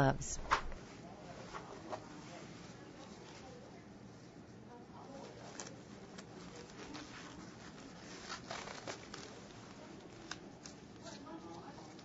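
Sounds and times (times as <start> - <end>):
gloves rustling: 5.0 - 12.0
rubber gloves snapping: 8.3 - 9.3.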